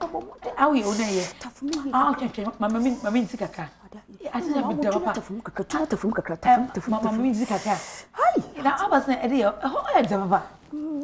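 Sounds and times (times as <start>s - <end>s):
short high hiss: 0.8s - 1.4s, 7.4s - 8.1s.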